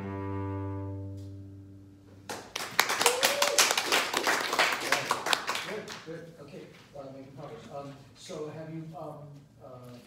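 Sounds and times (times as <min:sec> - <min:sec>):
cello: 0:00.0 - 0:02.2
brisk hand clapping: 0:02.3 - 0:06.0.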